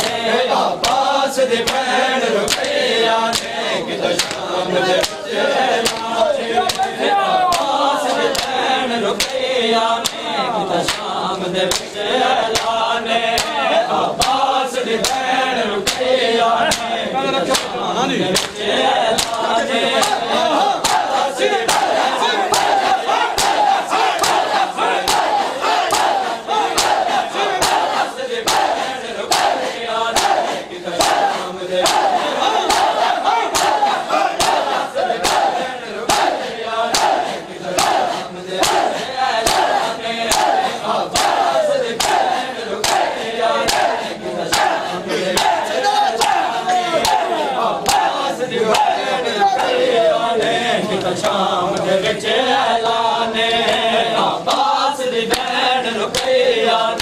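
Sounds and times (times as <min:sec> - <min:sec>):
crowd shouting and chanting: 0:00.0 - 0:57.0.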